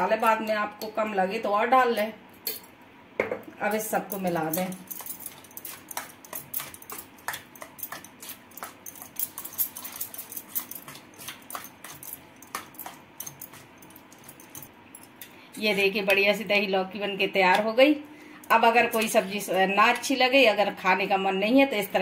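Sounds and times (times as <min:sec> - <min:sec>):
spoon clinking and scraping metal bowl: 0:04.1 - 0:16.2, 0:18.5 - 0:20.2.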